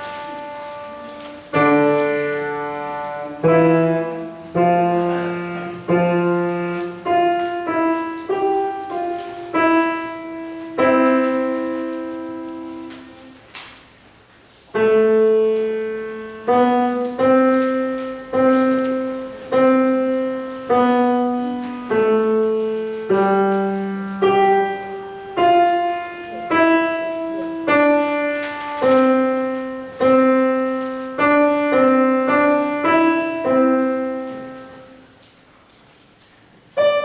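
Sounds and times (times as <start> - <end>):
grand piano chords: 0.0 - 13.7, 14.7 - 35.5, 36.6 - 37.0.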